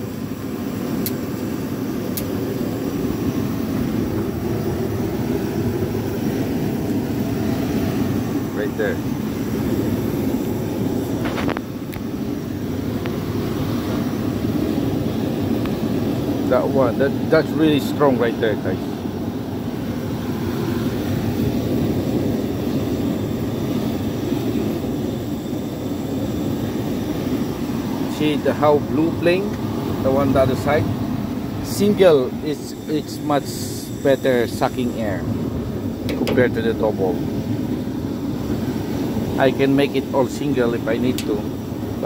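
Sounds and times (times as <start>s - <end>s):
gas burners flame rushing: 0.0s - 42.0s.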